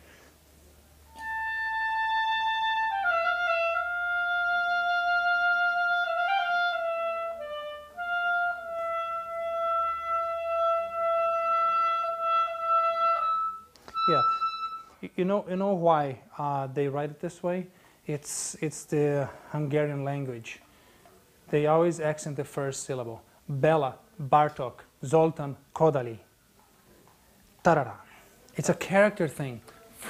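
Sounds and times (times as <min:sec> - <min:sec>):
clarinet slow melody: 0:01.0 - 0:15.0.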